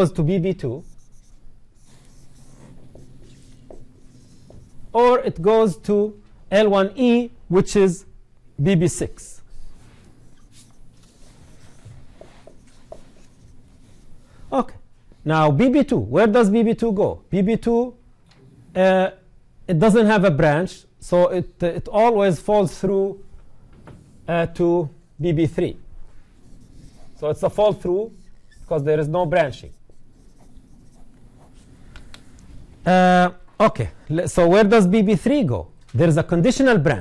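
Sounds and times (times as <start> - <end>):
marker scratching on whiteboard: 0.0 - 5.9, 9.0 - 14.5, 26.1 - 32.7
marker tip squeaks: 10.2 - 11.8, 28.2 - 28.9.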